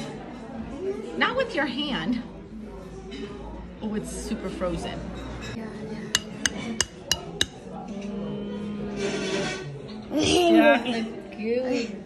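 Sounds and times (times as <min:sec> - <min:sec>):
spoon clinking in ceramic bowl: 0:06.2 - 0:07.6.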